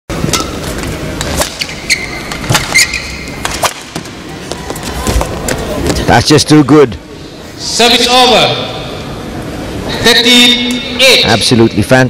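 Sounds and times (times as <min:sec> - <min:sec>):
racket hitting shuttlecock: 0:00.2 - 0:04.1
shoes squeaking on court floor: 0:00.4 - 0:06.0.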